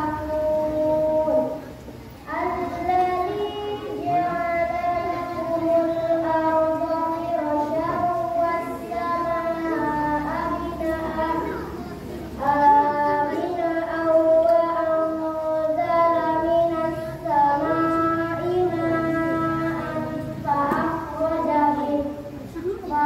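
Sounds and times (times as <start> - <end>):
children singing slow melody: 0.0 - 23.0.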